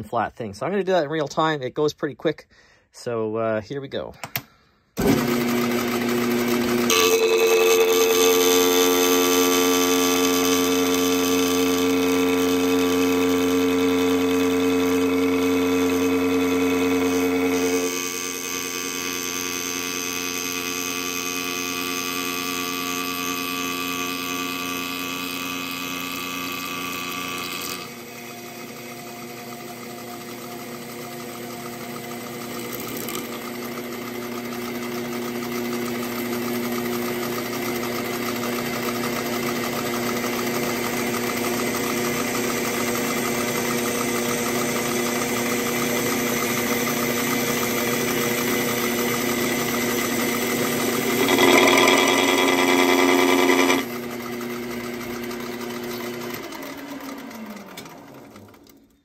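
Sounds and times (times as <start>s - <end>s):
lathe motor humming: 5.0s - 58.8s
lathe spinning down: 5.0s - 58.8s
cutting tool scraping plastic: 50.9s - 53.9s.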